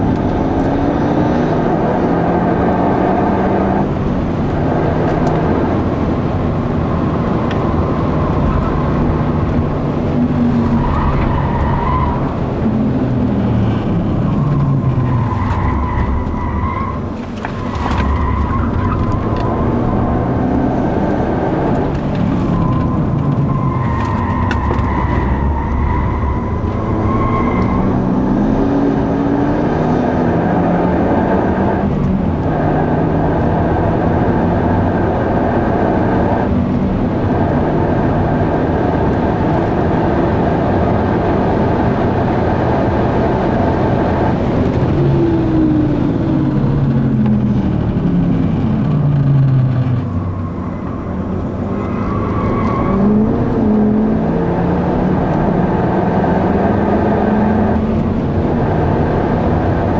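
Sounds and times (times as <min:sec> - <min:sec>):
car engine revving in cabin: 0:00.0 - 0:59.9.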